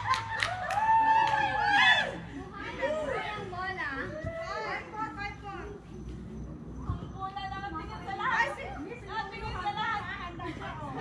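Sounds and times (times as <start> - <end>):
players calling and shouting: 0.0 - 11.0.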